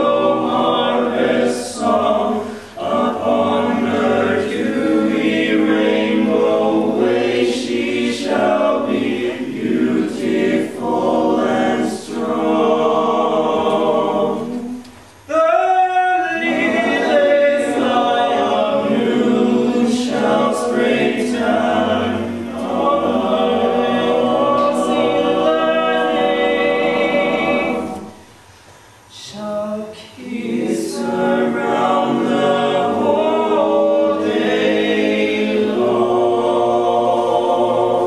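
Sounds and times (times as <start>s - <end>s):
mixed choir singing a cappella: 0.0s - 38.0s.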